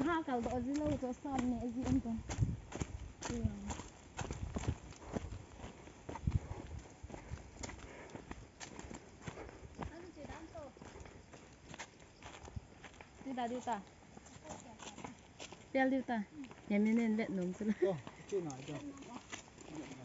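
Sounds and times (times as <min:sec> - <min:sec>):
footsteps on dirt path: 0:00.0 - 0:20.0.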